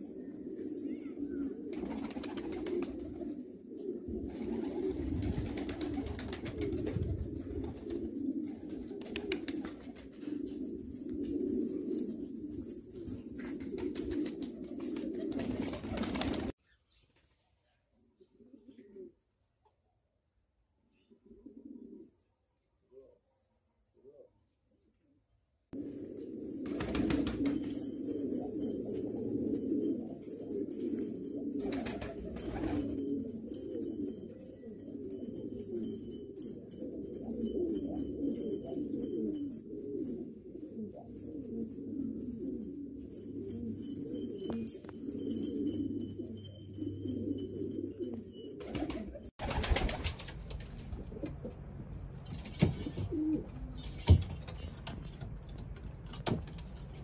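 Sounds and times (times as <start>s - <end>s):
pigeons cooing: 0.0s - 16.6s, 18.2s - 19.2s, 21.0s - 23.3s, 25.8s - 49.9s, 52.8s - 54.0s.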